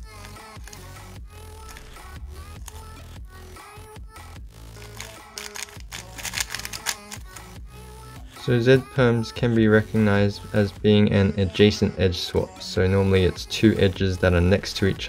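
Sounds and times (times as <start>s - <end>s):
background music: 0.0s - 15.0s
puzzle cube layers clicking: 4.8s - 7.5s.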